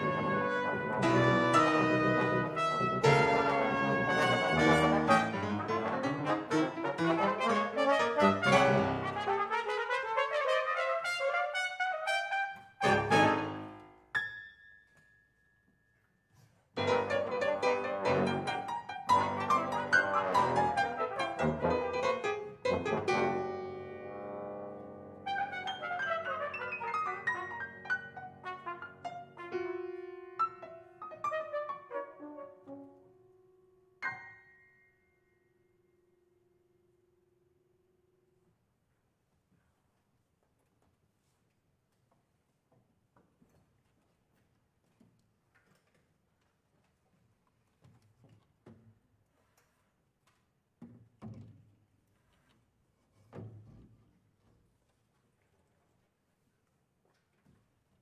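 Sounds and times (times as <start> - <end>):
brass ensemble with piano: 0.0 - 14.8, 16.7 - 35.2.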